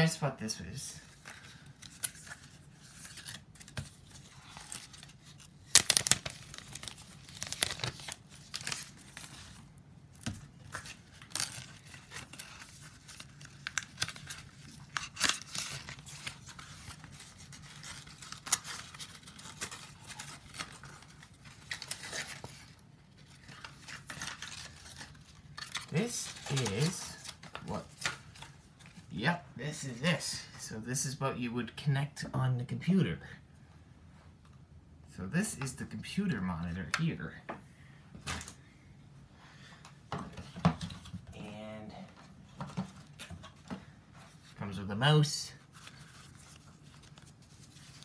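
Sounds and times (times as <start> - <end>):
paper packaging rustling and tearing: 1.0 - 29.1, 45.6 - 48.0.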